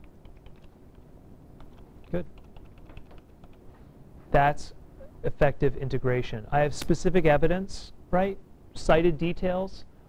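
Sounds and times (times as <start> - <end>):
computer keyboard typing clicks: 0.0 - 1.0, 1.6 - 3.6.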